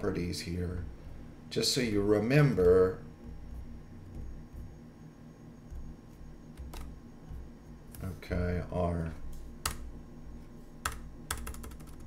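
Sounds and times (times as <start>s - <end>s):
low room hum: 0.0s - 12.0s
computer mouse clicking: 6.5s - 7.0s, 9.6s - 9.9s, 10.8s - 12.0s.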